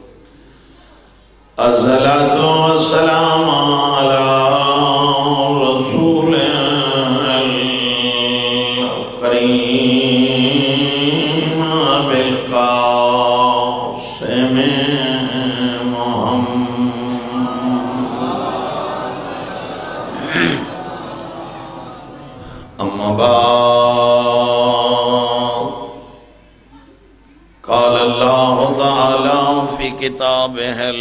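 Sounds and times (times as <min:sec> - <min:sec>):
man chanting into microphone: 0:01.6 - 0:18.0, 0:22.5 - 0:26.1, 0:27.6 - 0:31.0.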